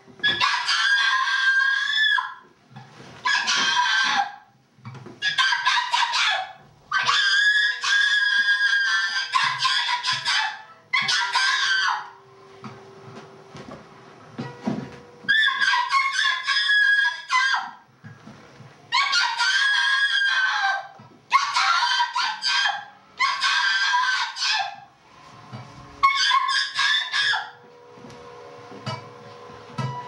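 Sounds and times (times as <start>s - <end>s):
high-pitched wavering screams: 0.2s - 2.4s, 5.2s - 12.2s, 15.2s - 17.8s, 19.0s - 24.9s, 25.9s - 27.6s.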